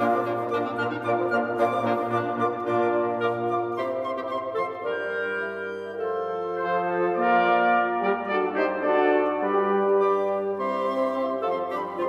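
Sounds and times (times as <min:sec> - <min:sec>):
trumpets and trombones: 0:00.0 - 0:12.0
wind ensemble playing chords: 0:00.0 - 0:12.0.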